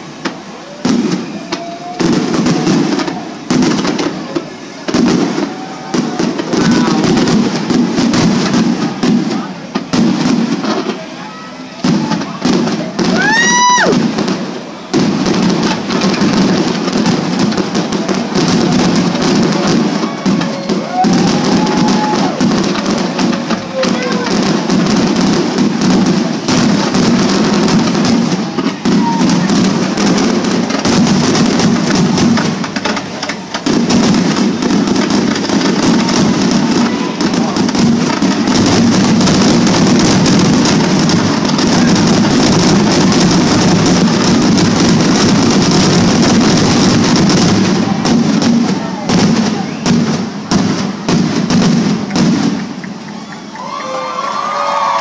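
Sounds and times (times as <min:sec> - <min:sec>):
fireworks bursts and crackles: 0:00.0 - 0:55.0.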